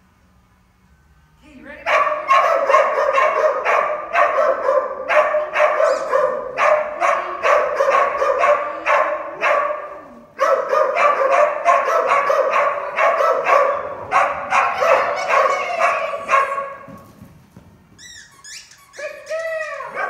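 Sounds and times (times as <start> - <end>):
small dog barking: 1.9 - 16.9.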